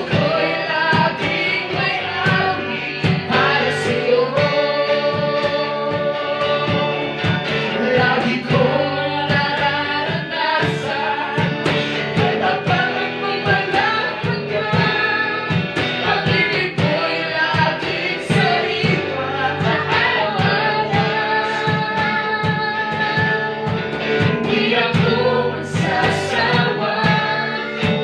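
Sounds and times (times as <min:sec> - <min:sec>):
electric guitar and band: 0:00.0 - 0:28.0
woman and man singing: 0:00.0 - 0:28.0.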